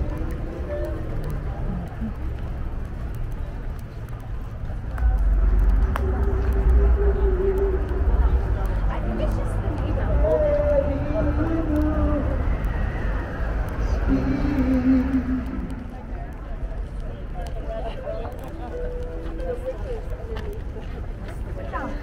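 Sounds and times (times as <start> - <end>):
low rumble: 0.0 - 17.8
indistinct voices: 0.0 - 22.0.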